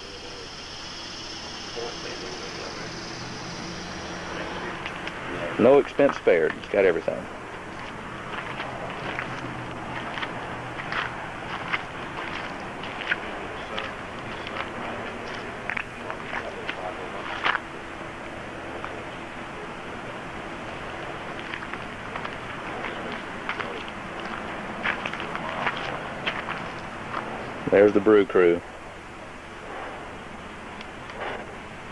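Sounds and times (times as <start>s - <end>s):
outdoor background noise: 0.0s - 31.9s
faint background voices: 8.0s - 28.5s.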